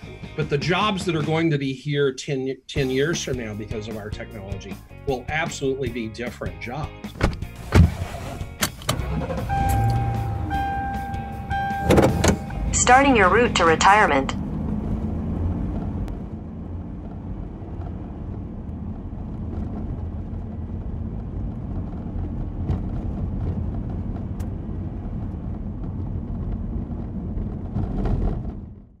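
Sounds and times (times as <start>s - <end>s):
car road and engine rumble: 0.0s - 1.4s, 7.0s - 29.0s.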